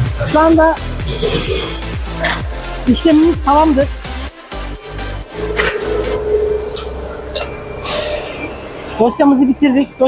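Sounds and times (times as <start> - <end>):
machine hum: 4.8 - 10.0
held tone: 5.2 - 9.3.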